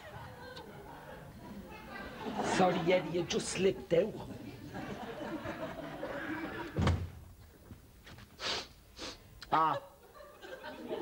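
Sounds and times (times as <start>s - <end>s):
door shutting with heavy thump: 6.7s - 7.2s.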